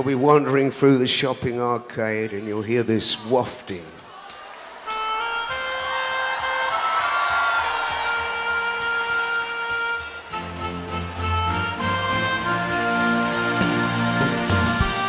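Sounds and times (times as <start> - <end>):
live band sustained chords: 4.9 - 15.0
audience applause: 5.9 - 9.0
bass line: 7.4 - 15.0.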